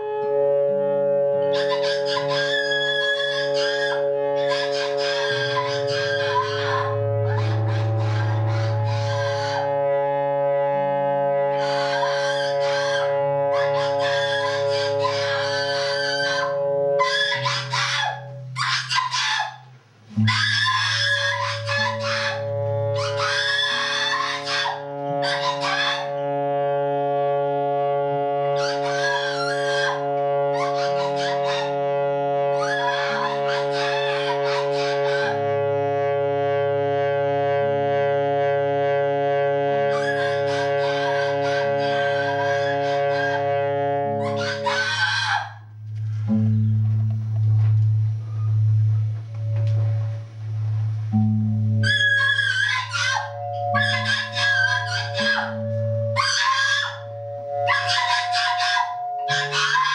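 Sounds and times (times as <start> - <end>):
guitar and saxophone drone: 0.0 - 59.9
high-pitched shrieking screams: 1.4 - 9.9, 11.4 - 26.3, 28.5 - 31.8, 32.5 - 35.5, 39.8 - 43.5, 44.1 - 45.7, 51.8 - 59.9.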